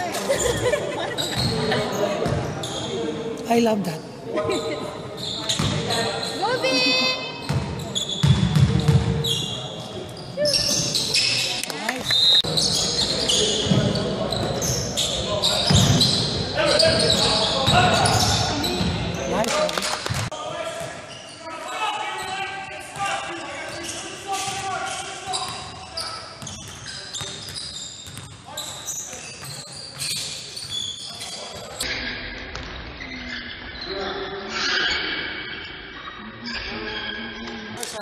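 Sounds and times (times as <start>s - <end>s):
voices echoing: 0.0s - 38.0s.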